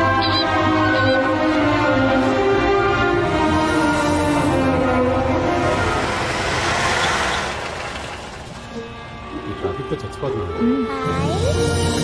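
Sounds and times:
car and motorbike engines: 0.0 - 12.0.

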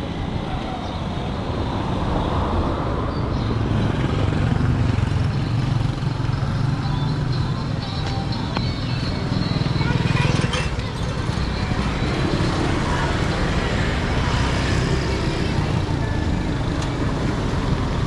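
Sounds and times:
cars passing: 0.0 - 18.0
motorcycles passing: 0.0 - 18.0.

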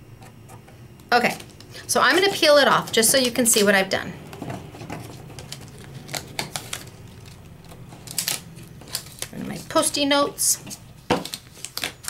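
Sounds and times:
sticky notes peeling: 1.3 - 12.0
paper rustling: 4.4 - 10.0, 10.6 - 12.0.

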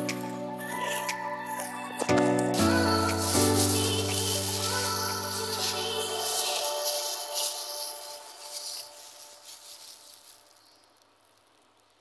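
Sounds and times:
gloved hand mixing chilies: 2.8 - 10.7.

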